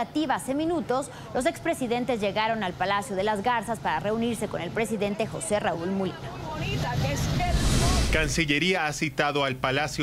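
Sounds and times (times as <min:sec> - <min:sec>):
faint passenger voices: 0:00.0 - 0:08.1.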